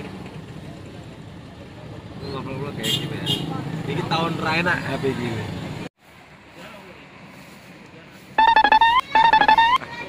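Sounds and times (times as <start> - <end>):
traffic noise inside a car: 0.0 - 10.0
outdoor ambience: 5.0 - 10.0
short electronic tones: 8.4 - 9.8.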